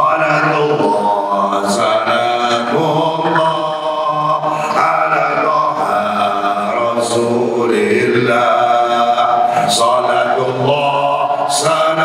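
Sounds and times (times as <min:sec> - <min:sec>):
man singing devotional chant: 0:00.0 - 0:12.0.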